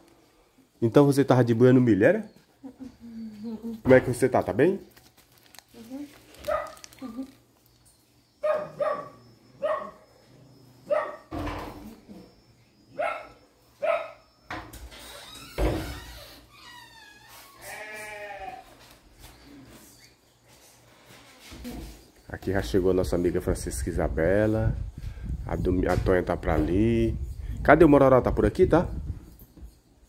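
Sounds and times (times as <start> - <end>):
livestock bleating: 17.6 - 18.7.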